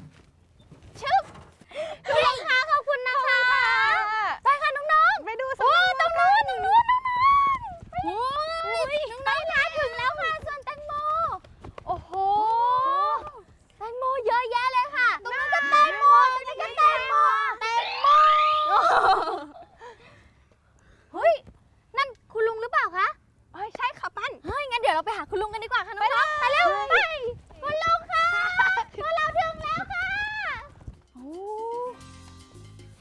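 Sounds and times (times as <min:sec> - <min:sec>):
children shouting: 0:15.1 - 0:19.4
background music with bass line: 0:31.2 - 0:33.0.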